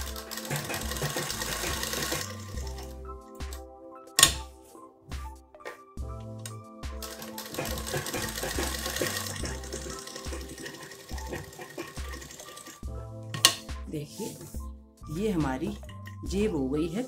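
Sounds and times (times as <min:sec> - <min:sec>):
sewing machine stitching: 0:00.0 - 0:03.0, 0:07.0 - 0:12.8
background music with beat: 0:00.0 - 0:17.0.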